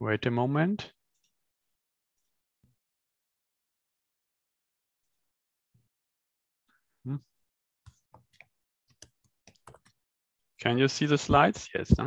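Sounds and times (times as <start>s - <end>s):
computer mouse clicks: 7.9s - 10.0s.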